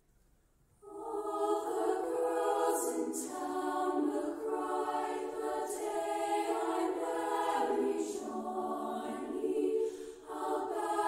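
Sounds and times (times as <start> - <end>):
women's choir singing harmony: 0.8 - 11.0.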